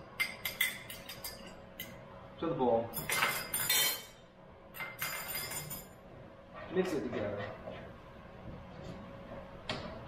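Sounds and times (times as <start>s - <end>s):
kitchen utensils clinking: 0.2s - 2.0s, 2.9s - 6.0s
glass dish clink: 3.0s - 4.1s, 4.8s - 6.0s.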